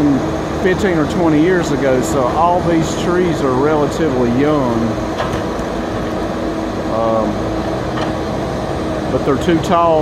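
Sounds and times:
diesel machinery droning: 0:00.0 - 0:10.0.

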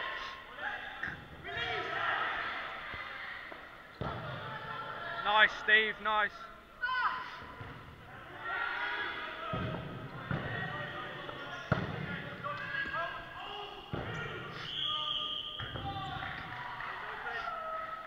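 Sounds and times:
dodgeballs smacking: 0:04.0 - 0:04.5, 0:07.4 - 0:08.0, 0:09.4 - 0:14.6, 0:15.6 - 0:17.0.

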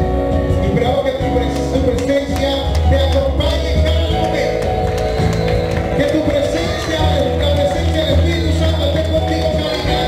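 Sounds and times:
live worship band: 0:00.0 - 0:10.0
congregation clapping along: 0:01.2 - 0:10.0.

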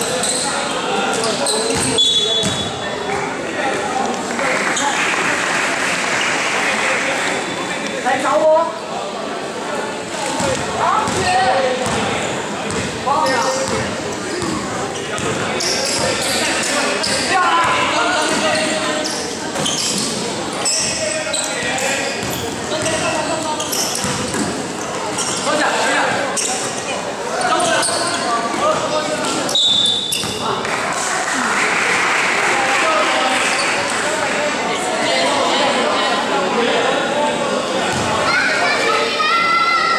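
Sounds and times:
indistinct voices in a gym: 0:00.0 - 0:39.9
basketball bouncing on court: 0:01.1 - 0:02.7, 0:10.4 - 0:12.1, 0:12.7 - 0:13.0, 0:14.4 - 0:16.1, 0:22.2 - 0:23.0, 0:24.0 - 0:25.4, 0:37.9 - 0:38.2
voices and shouts: 0:37.8 - 0:39.9.

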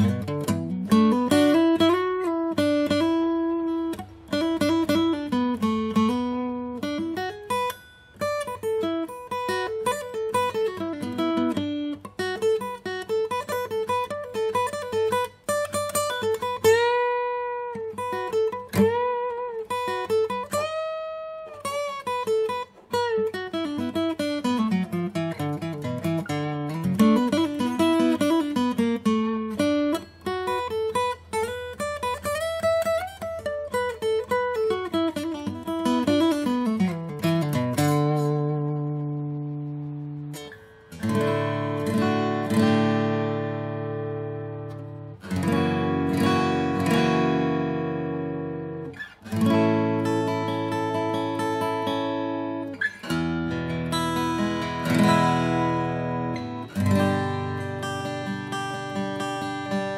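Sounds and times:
acoustic guitar picked melody: 0:00.0 - 0:59.9.

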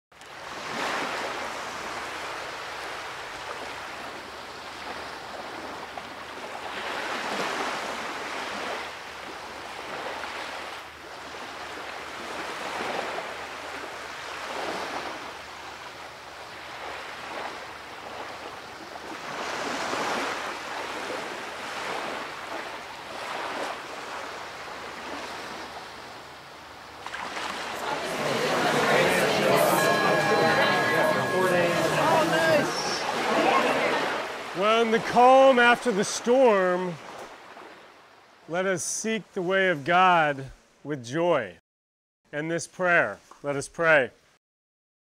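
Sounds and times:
small waves washing onto beach: 0:00.2 - 0:38.5.

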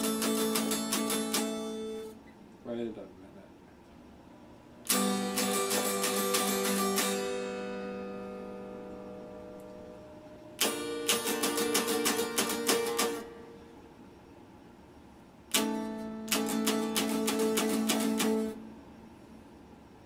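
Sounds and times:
electric guitar strumming chords: 0:00.0 - 0:02.2, 0:04.9 - 0:13.8, 0:15.5 - 0:18.7.

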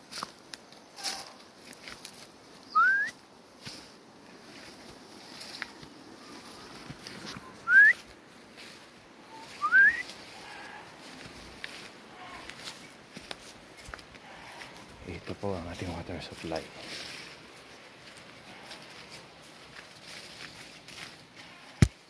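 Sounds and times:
footsteps on grassy path: 0:00.0 - 0:22.0
rising whistled notes: 0:02.7 - 0:03.2, 0:07.6 - 0:08.0, 0:09.4 - 0:10.1.

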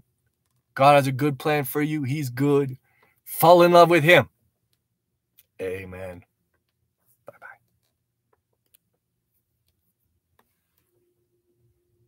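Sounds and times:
man whispering softly: 0:07.1 - 0:08.0.

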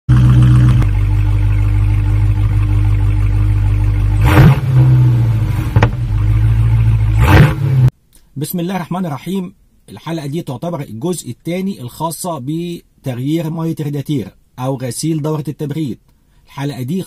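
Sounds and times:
car engine humming: 0:00.1 - 0:07.9
engine surges: 0:00.1 - 0:07.9.

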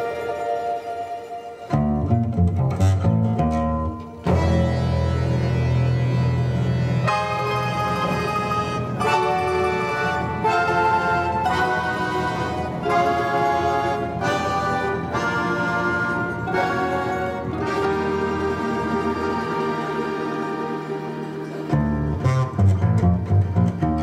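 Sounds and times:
folk-instrument orchestra with piano: 0:00.0 - 0:24.0.

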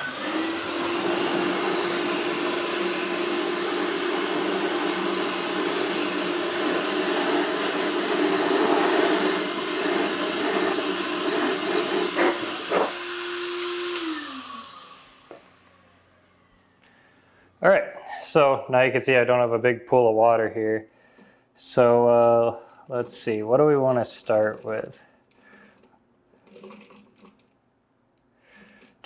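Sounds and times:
handheld blower running: 0:00.0 - 0:16.1.

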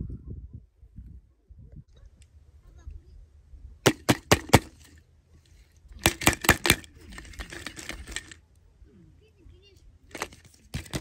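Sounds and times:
plastic eggs clicking together: 0:03.9 - 0:04.9, 0:06.0 - 0:08.4.

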